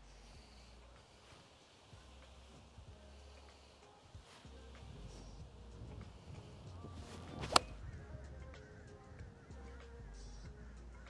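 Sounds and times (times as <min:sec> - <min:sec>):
golf club swish: 0:00.3 - 0:07.9
club striking golf ball: 0:06.0 - 0:07.8.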